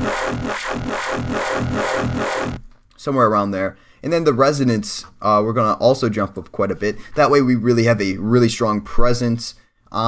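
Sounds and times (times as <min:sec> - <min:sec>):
pulsing synthesizer growl bass: 0:00.0 - 0:02.6.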